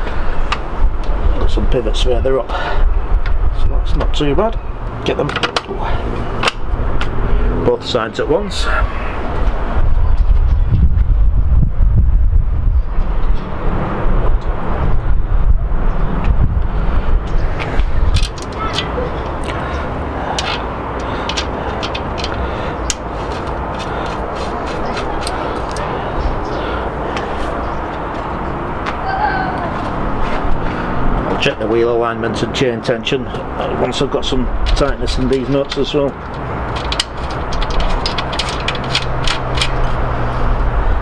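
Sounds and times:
outdoor background rumble: 0.0 - 41.0.

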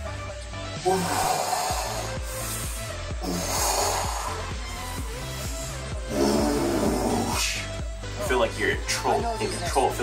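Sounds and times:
background music with deep beat: 0.0 - 10.0.

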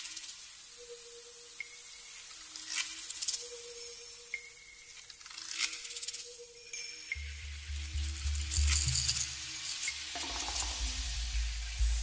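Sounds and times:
campfire hissing and crackling: 0.0 - 6.2, 7.1 - 12.0.

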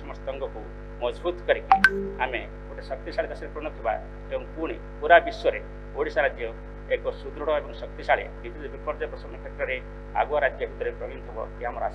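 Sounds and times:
man speaking into microphones: 1.1 - 11.9.

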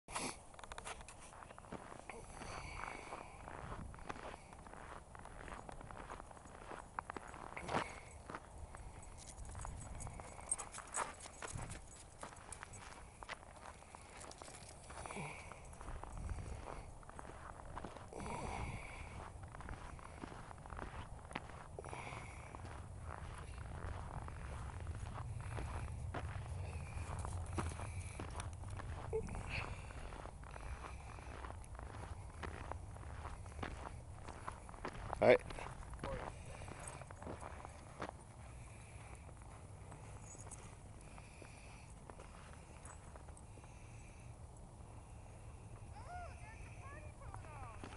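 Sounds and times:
footsteps crunching on snow: 0.1 - 44.1, 45.9 - 47.9.

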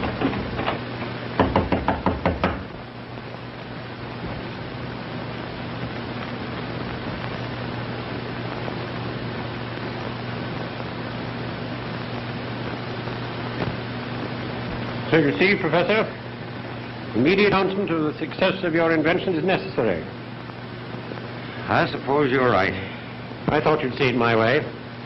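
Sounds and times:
film soundtrack hiss and hum: 0.0 - 25.0
knocking on wooden door: 1.4 - 2.7.

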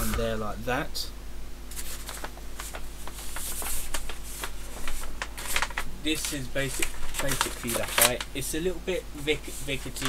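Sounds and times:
paper poster rustling: 1.7 - 10.0.

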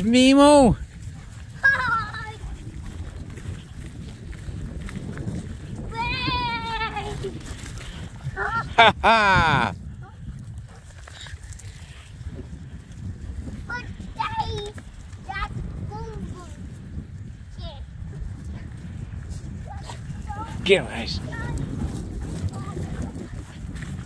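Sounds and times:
wind rumbling on microphone: 0.0 - 24.0.

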